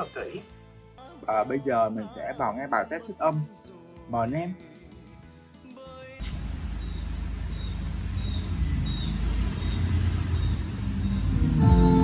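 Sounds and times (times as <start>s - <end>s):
bass-heavy music over loudspeakers: 10.4s - 12.0s.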